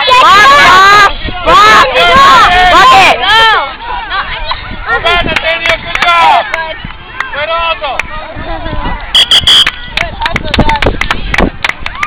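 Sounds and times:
whistle blasts: 9.1 - 9.8.

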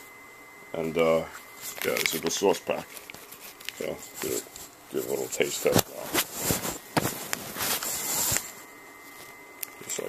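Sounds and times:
camera handling rustle: 2.9 - 9.4.

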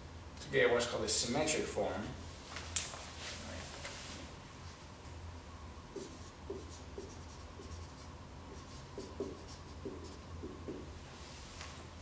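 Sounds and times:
steady low hum: 0.0 - 12.0
marker writing on whiteboard: 5.9 - 11.0.

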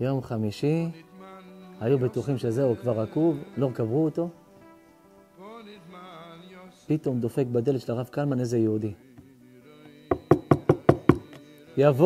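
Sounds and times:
faint background music chord: 0.0 - 12.0
knuckles knocking on wood: 10.1 - 11.4.

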